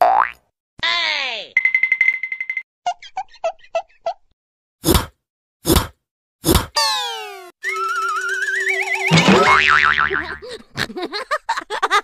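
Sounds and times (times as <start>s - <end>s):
falling boing: 9.1s - 10.4s.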